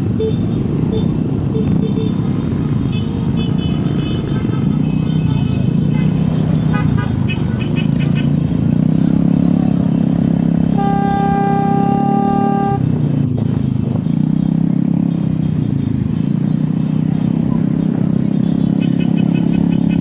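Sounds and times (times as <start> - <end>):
motorcycle engines: 0.0 - 20.0
road noise: 0.0 - 20.0
long horn blast: 10.7 - 13.0
short horn beeps: 10.8 - 12.8.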